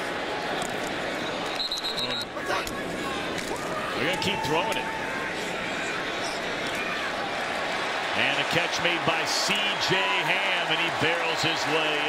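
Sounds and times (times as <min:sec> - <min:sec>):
stadium crowd noise: 0:00.0 - 0:12.0
referee whistle trill: 0:01.4 - 0:02.4.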